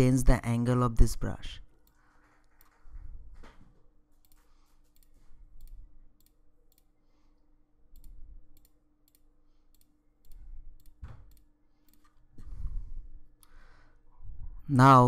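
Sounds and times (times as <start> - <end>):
computer mouse clicking: 1.8 - 2.8, 4.2 - 6.9, 7.9 - 12.2.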